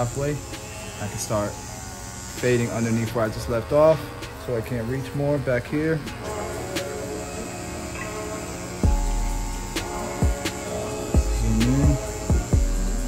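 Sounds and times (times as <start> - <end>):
background music with deep bass: 0.0 - 13.0
electric hair clipper buzzing: 0.0 - 13.0.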